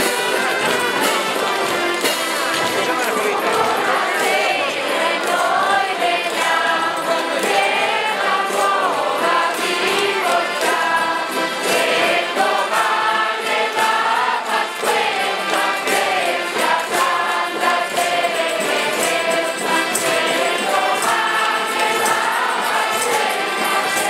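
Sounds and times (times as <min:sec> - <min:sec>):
accordions: 0:00.0 - 0:24.0
acoustic guitars: 0:00.0 - 0:24.0
group singing folk song: 0:00.0 - 0:24.0.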